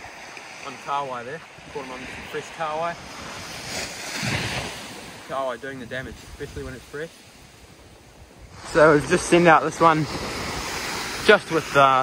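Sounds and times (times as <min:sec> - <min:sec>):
surf breaking on beach: 0:00.0 - 0:12.0.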